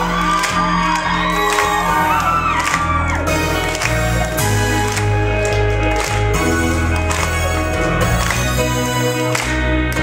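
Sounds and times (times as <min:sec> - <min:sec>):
crowd whooping and cheering: 0:00.0 - 0:09.7
live rock band playing: 0:00.0 - 0:10.0.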